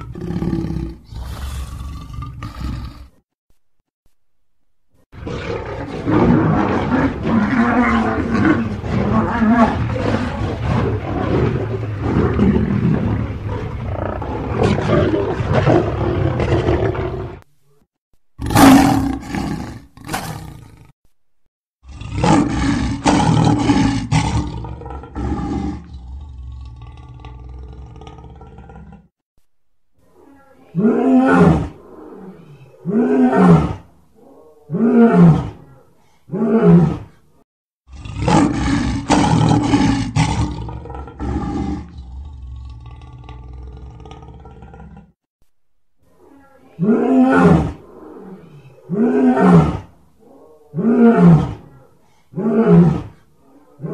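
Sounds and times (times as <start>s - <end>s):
lion roaring: 5.2s - 17.4s, 18.4s - 20.9s, 21.8s - 29.1s, 37.9s - 45.2s, 46.2s - 53.9s.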